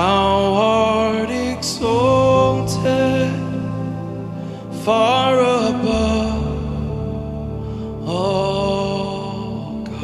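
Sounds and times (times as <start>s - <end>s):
slow worship music: 0.0s - 10.0s.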